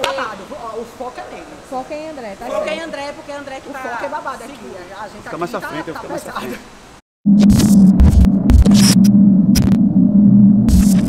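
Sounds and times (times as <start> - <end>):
deep booms: 7.3 - 11.0
low electronic drone: 7.3 - 11.0.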